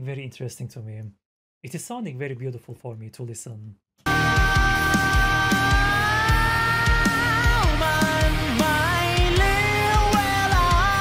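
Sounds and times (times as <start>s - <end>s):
rock band music: 4.1s - 11.0s.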